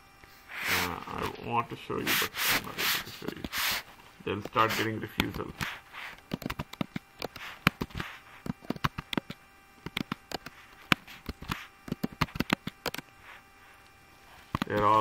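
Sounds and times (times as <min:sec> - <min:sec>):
computer keyboard typing: 0:06.3 - 0:13.0.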